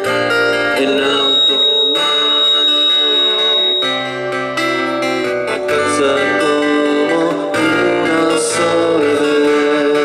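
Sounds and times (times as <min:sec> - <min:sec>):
acoustic guitar strumming: 0:00.0 - 0:10.0
keyboard playing: 0:00.0 - 0:10.0
thin high held note: 0:01.0 - 0:05.6.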